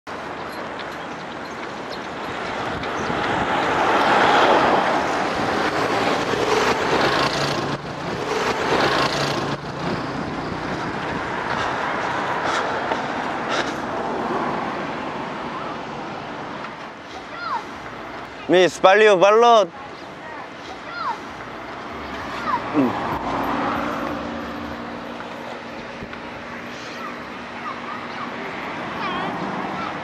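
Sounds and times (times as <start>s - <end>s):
vehicles passing on street: 0.0s - 30.0s.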